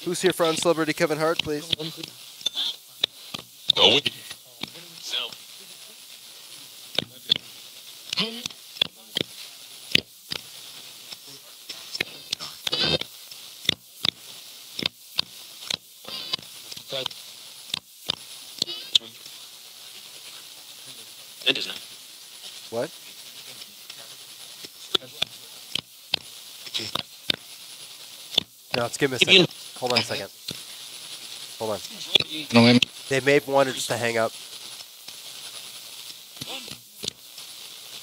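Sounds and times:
radio tuning clicks: 0.0 - 19.4, 21.3 - 37.3
radio static hiss: 0.0 - 38.0
snatches of broadcast voices: 0.0 - 38.0.

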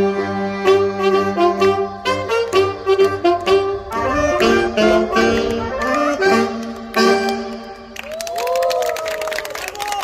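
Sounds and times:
audience applauding: 6.6 - 10.0
people cheering: 7.9 - 10.0.

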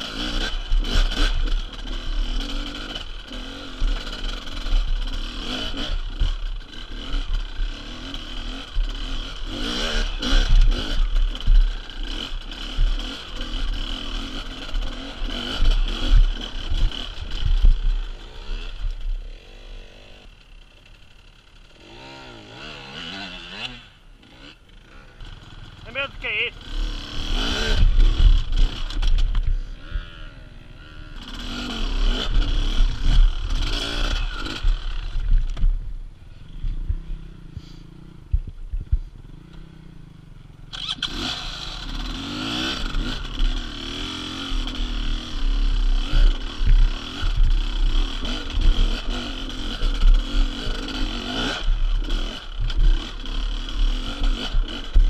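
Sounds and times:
dirt bike engines revving: 0.0 - 55.0
low rumble on microphone: 35.1 - 39.2.

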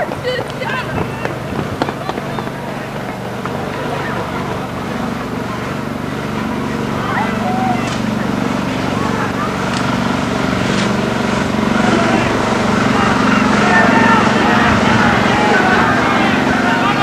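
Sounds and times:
fire truck engine running: 0.0 - 17.0
people's voices: 0.0 - 17.0.

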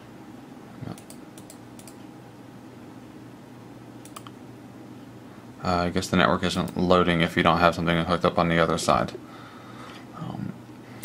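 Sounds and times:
low room hum: 0.0 - 11.0
computer mouse clicks: 0.9 - 2.0, 4.0 - 4.4.

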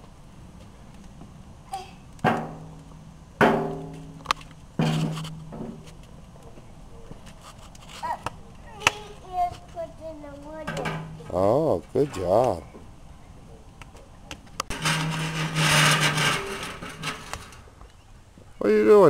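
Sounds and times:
firewood knocking on metal: 2.2 - 5.9, 10.6 - 11.4.

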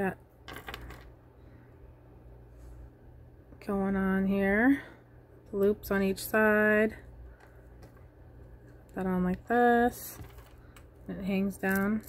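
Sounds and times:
metal jewelry clinking: 10.2 - 12.0.

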